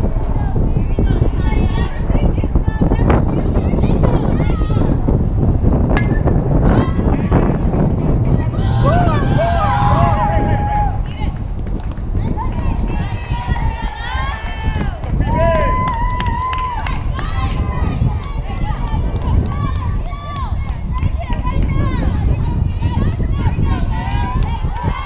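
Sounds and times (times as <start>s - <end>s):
wind rumble on microphone: 0.0s - 25.0s.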